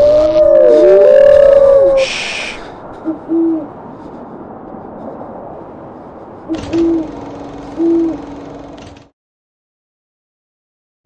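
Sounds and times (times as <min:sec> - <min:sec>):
low owl-like hoots: 0:00.0 - 0:03.8, 0:06.5 - 0:08.4
steady low drone: 0:00.0 - 0:08.9.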